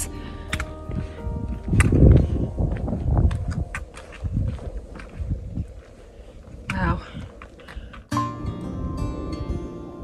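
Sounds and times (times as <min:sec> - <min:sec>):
footsteps crunching on gravel: 0:00.0 - 0:08.1
wind noise: 0:00.0 - 0:10.0.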